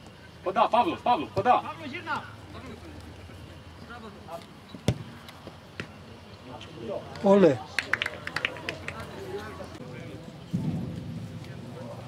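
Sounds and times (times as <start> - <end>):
faint players' voices: 0.0 - 12.0
football kicked with a thud: 4.8 - 5.1.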